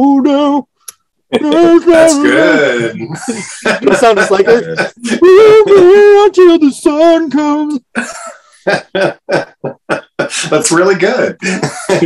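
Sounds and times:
man laughing: 1.3 - 6.2, 7.9 - 10.8, 11.4 - 12.0.

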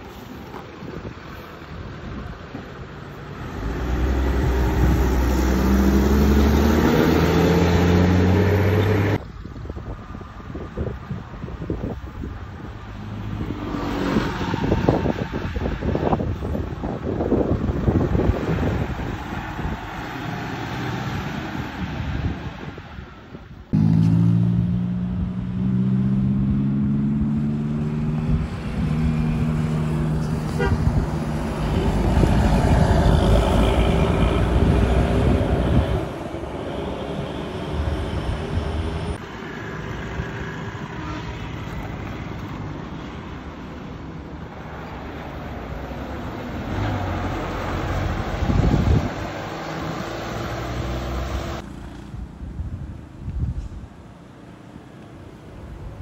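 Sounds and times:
bus driving by: 0.0 - 52.5
multi-tone bus horn melody: 30.5 - 31.0.

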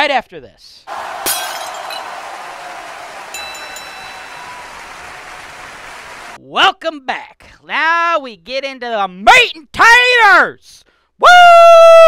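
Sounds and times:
high bell-like tones: 3.3 - 4.9.

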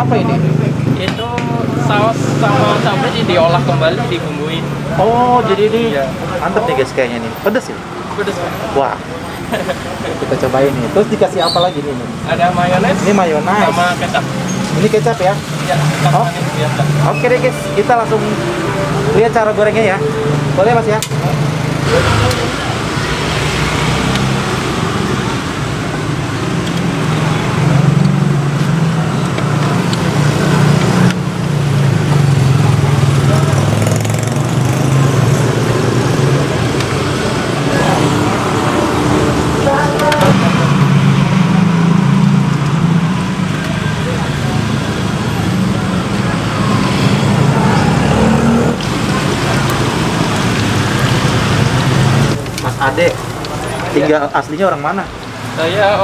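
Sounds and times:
indistinct voices: 0.0 - 56.0
roadside traffic noise: 0.0 - 56.0.

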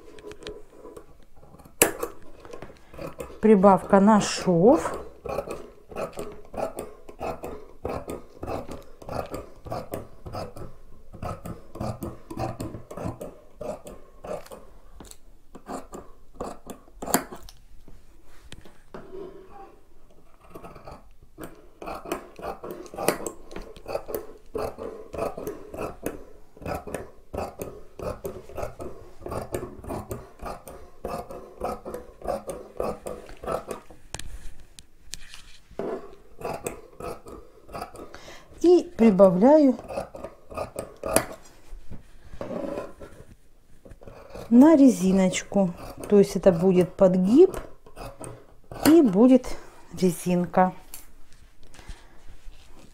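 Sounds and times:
shears snipping fabric: 1.7 - 14.6, 20.5 - 34.3, 35.1 - 41.6, 43.9 - 51.1.

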